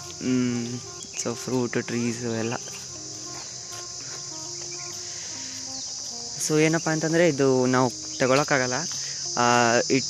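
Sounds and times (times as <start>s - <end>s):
faint background music: 0.0s - 10.0s
insects droning: 0.0s - 10.0s.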